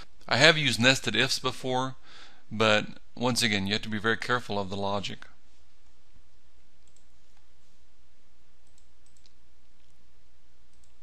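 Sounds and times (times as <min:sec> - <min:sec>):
steady low hum: 0:00.0 - 0:11.0
faint clicks: 0:06.8 - 0:07.5, 0:08.6 - 0:10.0, 0:10.7 - 0:11.0.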